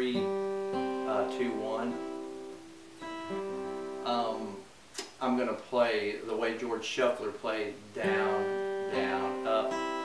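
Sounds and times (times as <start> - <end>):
acoustic guitar notes picked: 0.0 - 5.6, 6.6 - 10.0.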